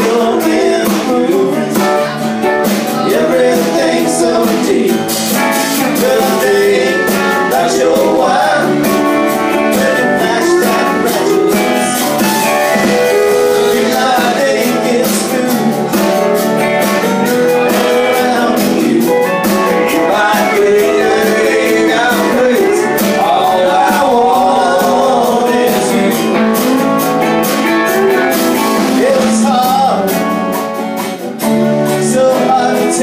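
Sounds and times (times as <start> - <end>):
electric and acoustic guitars: 0.0 - 33.0.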